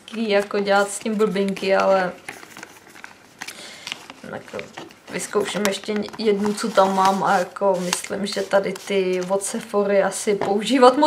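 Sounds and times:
rustling: 0:00.7 - 0:09.6.

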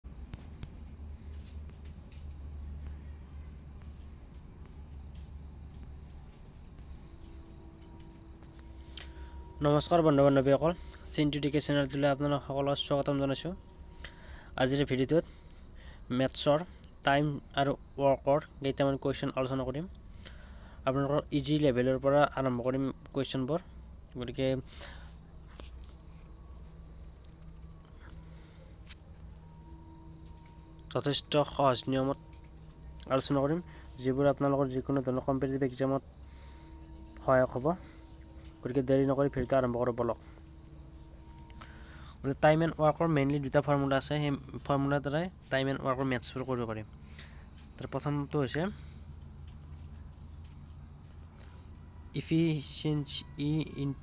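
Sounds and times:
insect chirping: 0:00.0 - 0:54.0
low steady hum: 0:00.0 - 0:54.0.

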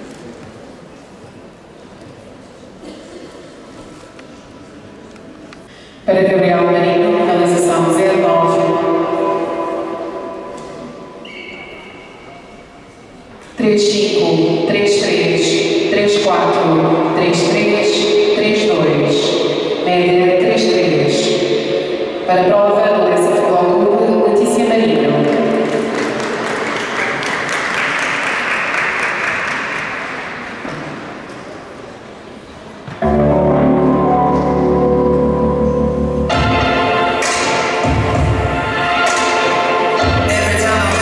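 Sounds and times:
announcer voice over loudspeakers: 0:06.1 - 0:10.4, 0:22.3 - 0:25.3
audience applauding: 0:25.2 - 0:30.5.

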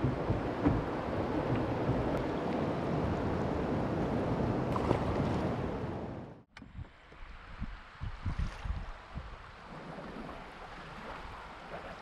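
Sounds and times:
wind bumps on microphone: 0:00.0 - 0:10.4
river water: 0:00.0 - 0:12.0.

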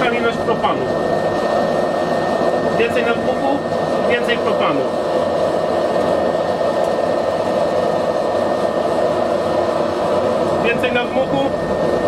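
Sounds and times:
forge burner and blower rushing: 0:00.0 - 0:12.0.

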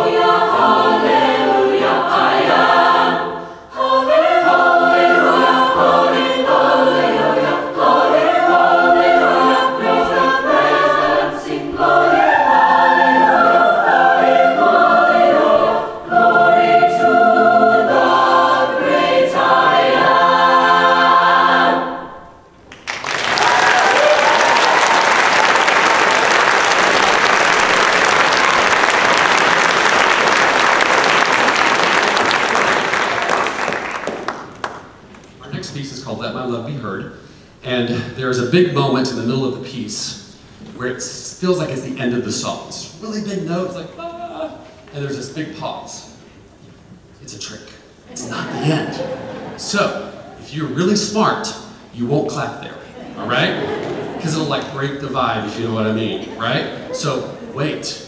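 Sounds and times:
choir singing in parts: 0:00.0 - 0:22.5, 0:48.1 - 0:50.5, 0:52.8 - 0:54.4
audience applause: 0:22.7 - 0:35.1.

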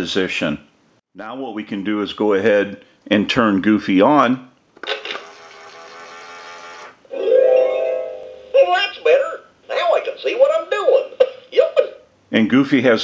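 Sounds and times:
recorded cartoon voice: 0:08.6 - 0:12.1.

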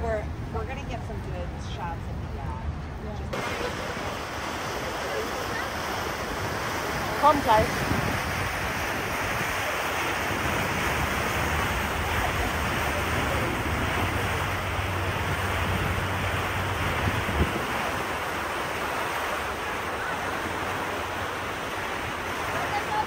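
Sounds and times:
water noise from boat: 0:00.0 - 0:23.0
wind rushing over microphone: 0:00.0 - 0:23.0.

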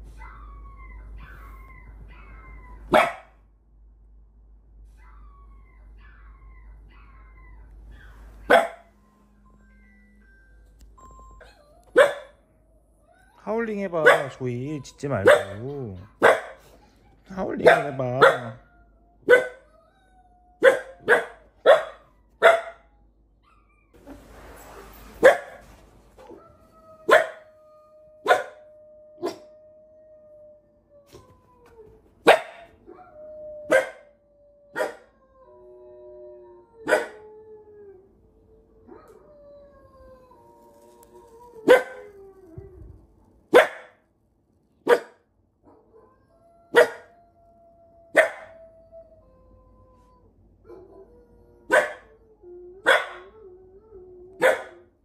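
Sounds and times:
puppy barking: 0:02.9 - 0:03.4, 0:08.5 - 0:08.9, 0:11.9 - 0:12.4, 0:14.0 - 0:14.4, 0:15.2 - 0:16.7, 0:17.6 - 0:18.6, 0:19.3 - 0:19.6, 0:20.6 - 0:22.8, 0:27.1 - 0:27.4, 0:28.2 - 0:28.6, 0:32.2 - 0:32.7, 0:33.7 - 0:34.0, 0:34.8 - 0:35.0, 0:36.8 - 0:37.2, 0:41.6 - 0:42.0, 0:43.5 - 0:44.0, 0:44.9 - 0:45.2, 0:46.7 - 0:47.1, 0:48.1 - 0:48.5, 0:51.7 - 0:52.0, 0:52.8 - 0:53.2, 0:54.4 - 0:54.8
dog howling on tv: 0:13.1 - 0:16.6, 0:17.3 - 0:22.9, 0:26.4 - 0:31.2, 0:32.3 - 0:42.7, 0:45.7 - 0:55.0.

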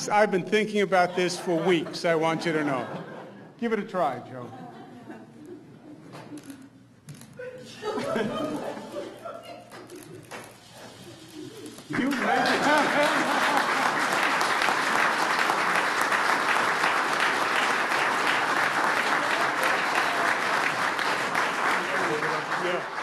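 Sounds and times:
audience applause: 0:11.8 - 0:23.0.

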